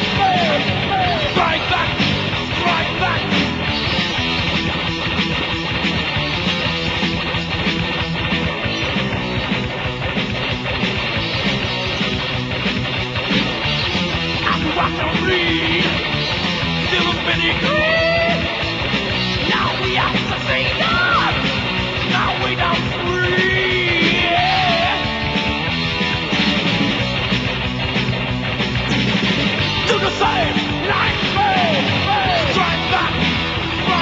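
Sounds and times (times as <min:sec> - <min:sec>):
lo-fi metal band instrumental: 0:00.0 - 0:34.0.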